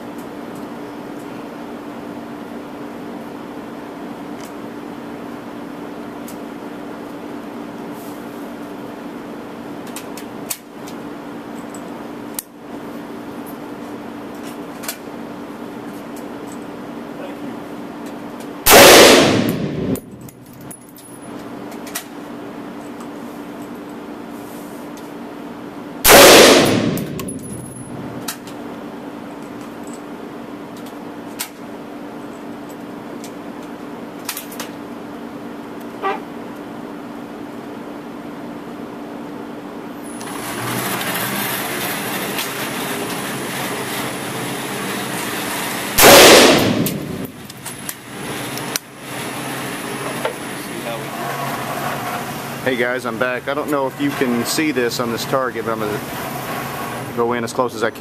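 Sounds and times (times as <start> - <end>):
ventilation hum: 0.0 - 58.0
rifle shots with echo: 18.7 - 20.1, 26.1 - 27.7, 46.0 - 47.4.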